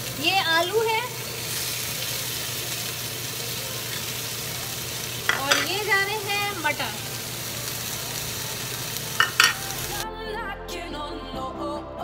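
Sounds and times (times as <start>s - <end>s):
vegetables sizzling in pan: 0.0s - 10.0s.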